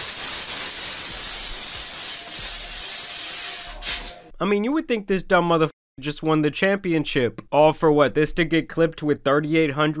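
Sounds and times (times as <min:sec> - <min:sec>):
sparkling drink spraying hiss: 0:00.0 - 0:04.3.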